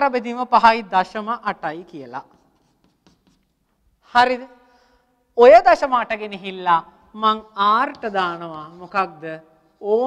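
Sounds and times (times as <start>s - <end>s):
chalk scratching on blackboard: 1.8s - 3.6s, 7.9s - 9.1s.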